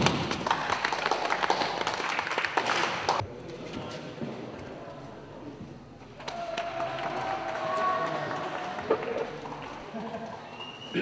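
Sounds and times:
indistinct voices in a hall: 0.8s - 11.0s.

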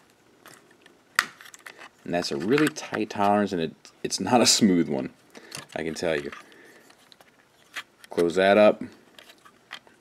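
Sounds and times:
faint handling ticks and scrapes: 5.5s - 10.0s.

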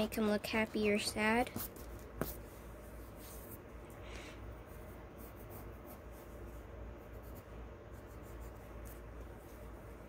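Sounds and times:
pencil scratching on paper: 1.4s - 3.6s, 4.7s - 10.0s.

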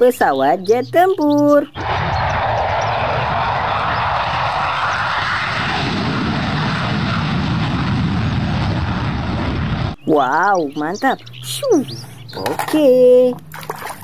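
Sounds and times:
jet engine roaring: 1.8s - 10.0s.

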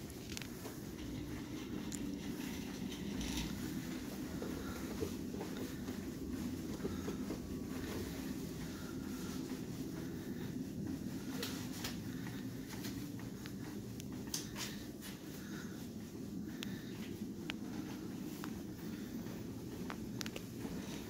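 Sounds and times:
faint rustling: 0.0s - 21.0s
low room hum: 0.0s - 21.0s
soft clicks of chest compressions: 0.0s - 21.0s.

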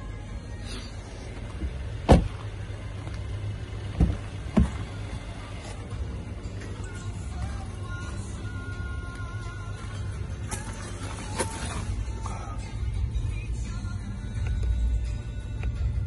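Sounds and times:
music: 0.0s - 2.8s, 4.0s - 16.0s
car door thumping shut: 1.6s - 2.5s, 3.9s - 4.8s.

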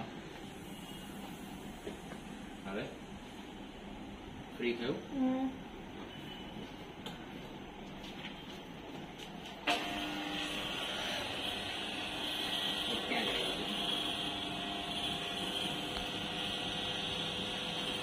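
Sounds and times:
electric motor running: 9.7s - 18.0s.

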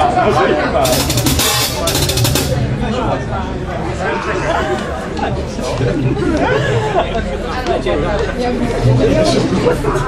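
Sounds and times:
fast drum and cymbal hits: 0.8s - 3.0s.

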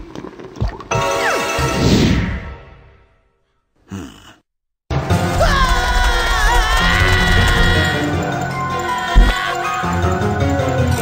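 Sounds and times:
music: 0.9s - 3.2s, 4.9s - 11.0s
breathy vocal sigh: 3.9s - 4.4s.

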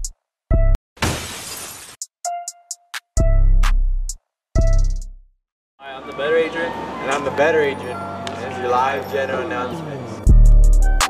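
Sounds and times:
glass shattering: 1.0s - 2.0s.

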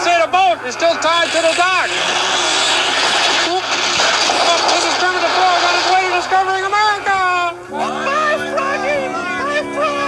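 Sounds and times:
steady rushing noise: 0.7s - 7.6s.

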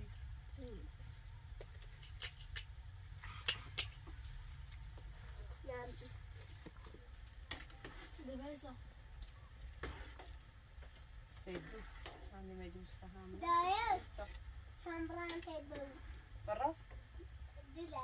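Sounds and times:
child speaking: 5.6s - 6.2s, 13.4s - 16.0s, 17.6s - 18.0s.

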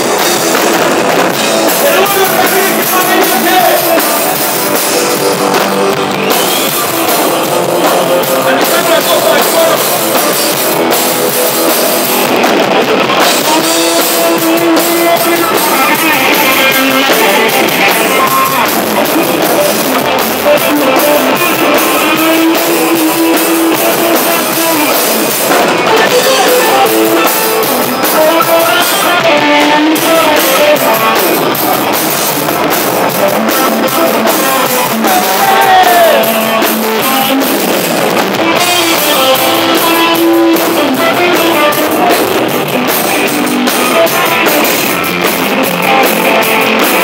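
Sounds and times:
live band with drums and guitar: 0.0s - 47.0s.

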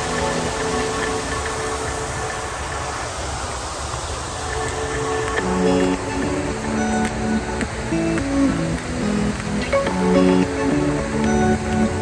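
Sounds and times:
faint music: 0.0s - 12.0s.

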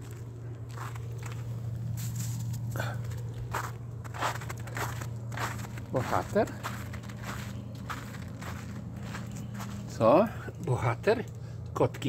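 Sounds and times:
footsteps on wet snow: 0.0s - 11.3s
steady low hum: 0.0s - 12.0s.

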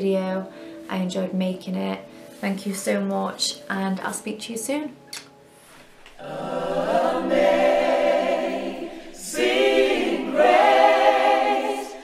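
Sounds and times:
choir singing a cappella: 6.1s - 12.0s.

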